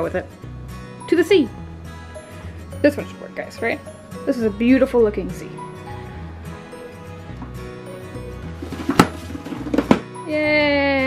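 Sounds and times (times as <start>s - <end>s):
background music: 0.0s - 11.0s
books toppling onto wooden floor: 8.6s - 10.1s.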